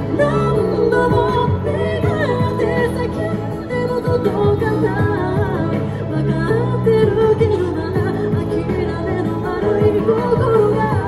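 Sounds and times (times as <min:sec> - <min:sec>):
backing track chords and bass: 0:00.0 - 0:11.0
person singing into microphone: 0:00.0 - 0:11.0.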